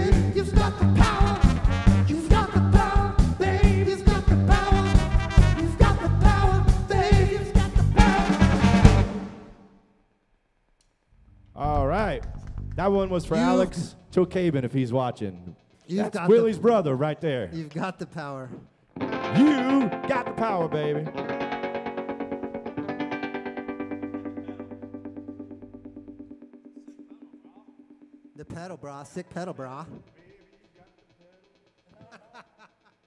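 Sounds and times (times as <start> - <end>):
live band chord ringing out: 8.0 - 9.6, 19.0 - 28.4.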